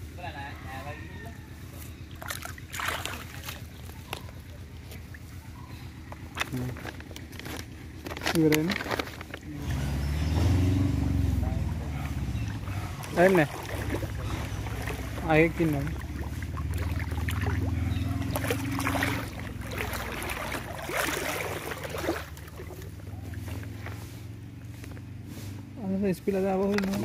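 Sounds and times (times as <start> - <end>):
water splashing from wading: 1.5 - 25.6
steady low hum: 10.8 - 26.4.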